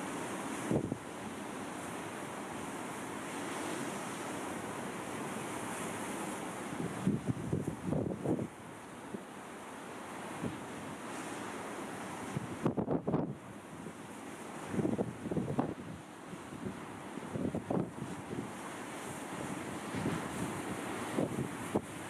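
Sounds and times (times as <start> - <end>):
wind on microphone: 0.6 - 1.0, 6.7 - 8.6, 12.2 - 14.0, 14.6 - 22.0
wind gusts buffeting microphone: 6.8 - 8.5, 12.3 - 13.4, 14.6 - 18.6, 19.4 - 22.0.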